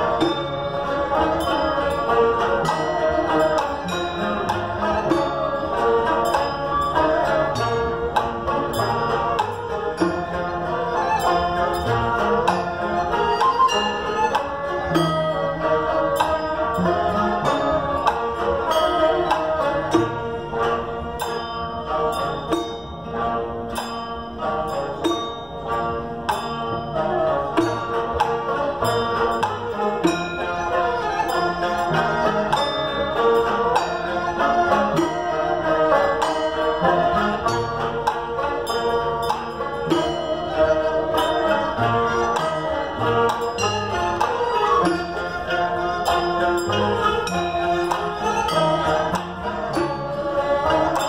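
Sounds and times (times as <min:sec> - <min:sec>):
bowed fiddles: 0:00.0 - 0:51.0
lutes: 0:00.0 - 0:51.0
plucked zither: 0:00.0 - 0:51.0
tinkling percussion strokes: 0:00.0 - 0:51.0.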